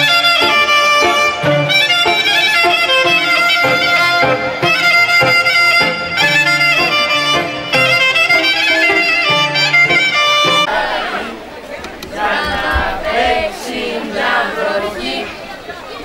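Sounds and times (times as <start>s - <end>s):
violin playing lively melody: 0.0s - 10.7s.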